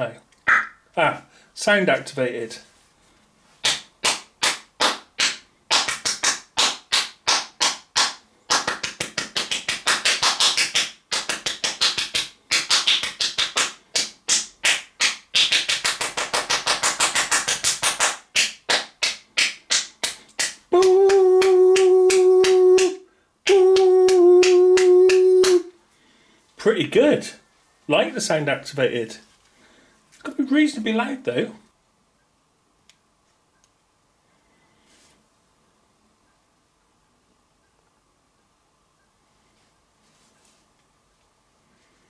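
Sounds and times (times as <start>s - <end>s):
hand clicks and claps: 3.6s - 25.7s
voice holding steady note: 20.7s - 25.8s.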